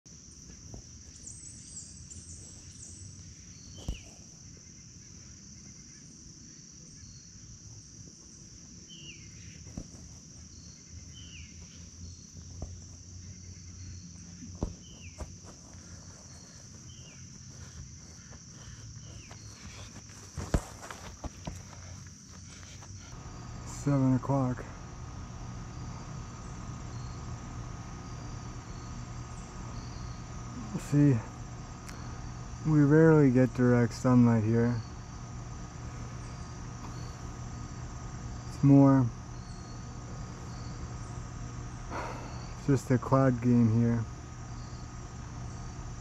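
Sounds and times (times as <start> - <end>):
crickets chirping: 0.1 - 46.0
ball kicked on grass: 3.7 - 4.3, 9.6 - 10.5, 14.4 - 23.6, 36.2 - 37.8.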